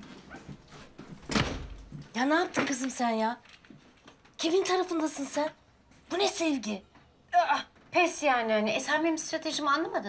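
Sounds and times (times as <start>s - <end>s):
light knocks and shuffles: 0.0s - 7.2s
wooden door closing with a thud: 1.2s - 2.0s.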